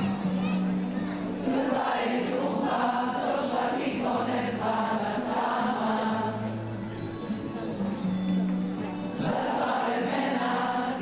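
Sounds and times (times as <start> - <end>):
crowd singing in chorus: 1.2 - 6.9, 9.0 - 11.0.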